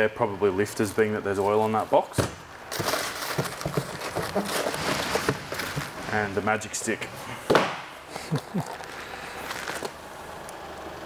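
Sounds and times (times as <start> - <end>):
cardboard rustling and scraping: 2.6 - 7.8, 8.5 - 10.0
small knocks and crinkles: 2.7 - 6.2.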